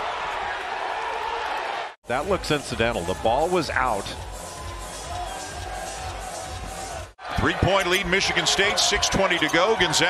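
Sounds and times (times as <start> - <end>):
arena crowd din: 0.0 - 10.0.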